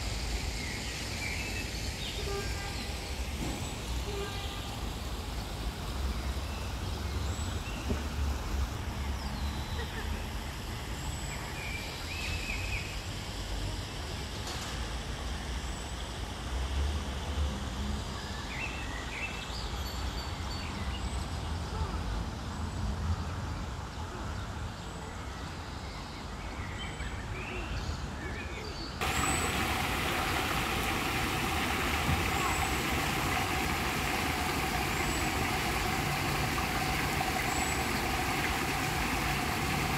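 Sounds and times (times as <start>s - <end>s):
fountain water splashing: 0.0s - 11.7s, 29.0s - 39.9s.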